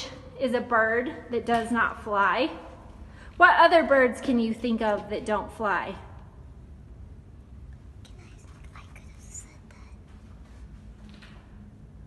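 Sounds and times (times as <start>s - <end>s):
low room rumble: 0.0s - 12.0s
faint whispered speech: 8.0s - 10.1s.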